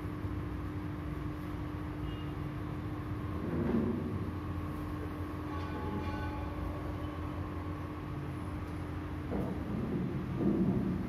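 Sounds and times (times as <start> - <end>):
room noise rumble and hum: 0.0 - 11.0.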